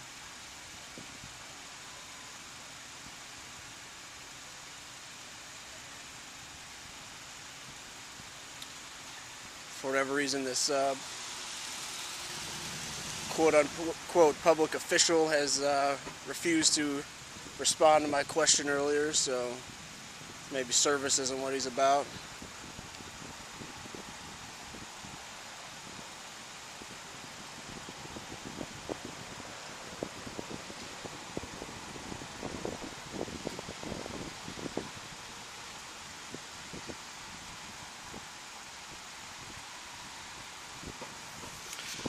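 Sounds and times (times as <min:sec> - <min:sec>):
city street hiss: 0:00.0 - 0:42.0
car driving past: 0:11.0 - 0:14.1
faint rustles: 0:40.8 - 0:42.0.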